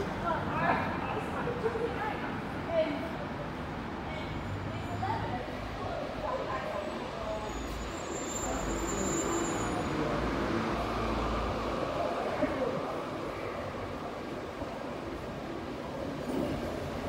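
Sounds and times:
traffic hum: 0.0 - 17.0
voices of passersby: 0.0 - 17.0.

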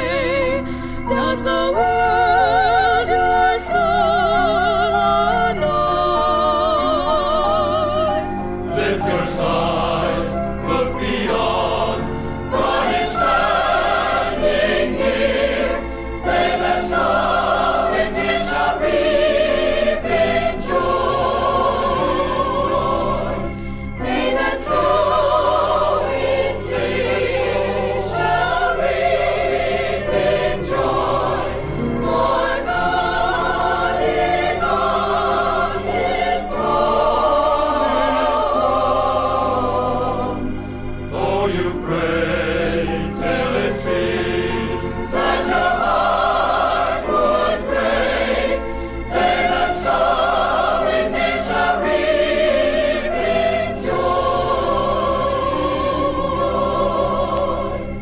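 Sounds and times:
choir singing gospel: 0.0 - 58.0.

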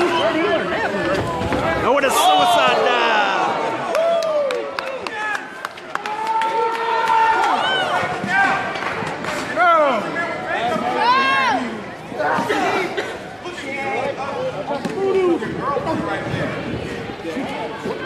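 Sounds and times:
crowd shouting and yelling: 0.0 - 18.0.

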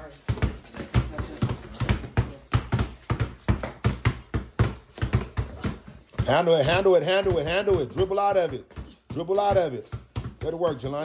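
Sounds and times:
basketballs bouncing on concrete: 0.0 - 11.0.

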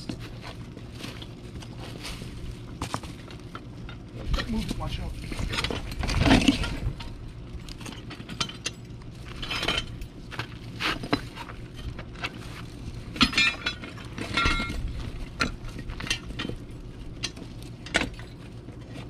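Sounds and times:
metal hand truck clanking: 13.2 - 18.3.

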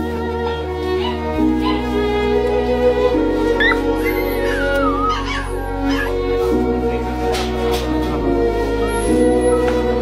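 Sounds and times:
slow sad background music: 0.0 - 10.0
puppy whimpering: 1.0 - 1.9, 3.6 - 6.3.

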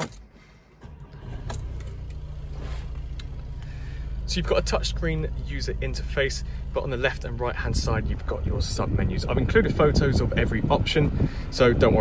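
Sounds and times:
diesel engine starting and idling: 0.0 - 12.0.

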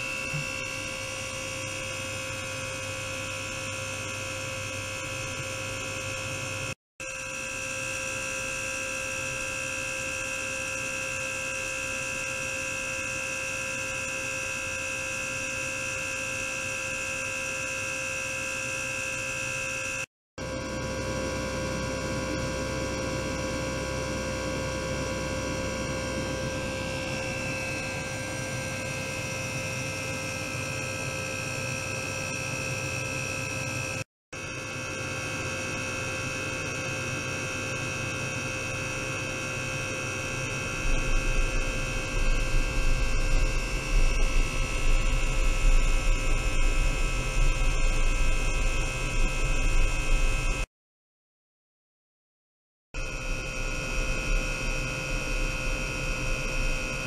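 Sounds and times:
electronic hum with high whine: 0.0 - 50.7, 53.0 - 57.0.

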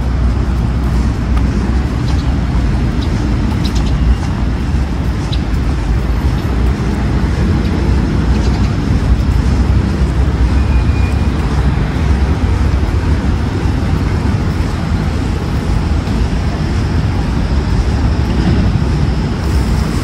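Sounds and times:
traffic rumble: 0.0 - 20.0.

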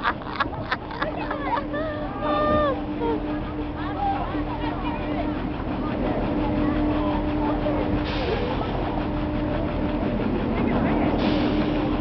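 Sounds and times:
ride machinery humming: 0.0 - 12.0
voices of people: 0.5 - 11.7.

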